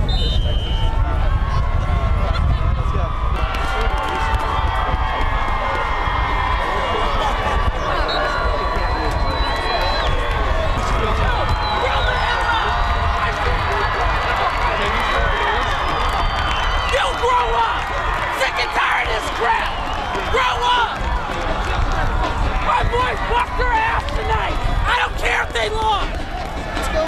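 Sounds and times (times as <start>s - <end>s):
crowd babble: 0.0s - 27.0s
people shouting and cheering: 0.0s - 27.0s.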